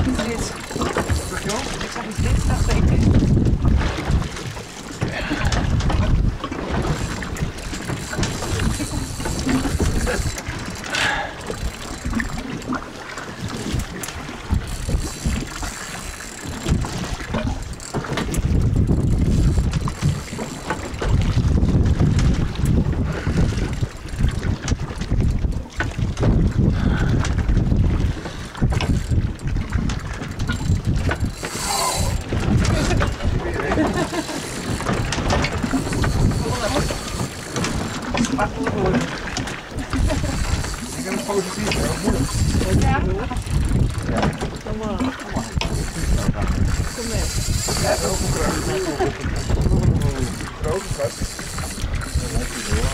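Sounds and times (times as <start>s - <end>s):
fishing reel clicking: 0.0s - 21.1s, 28.6s - 39.1s, 39.8s - 52.9s
boat and water noise: 0.0s - 52.9s
wind buffeting microphone: 0.0s - 52.9s.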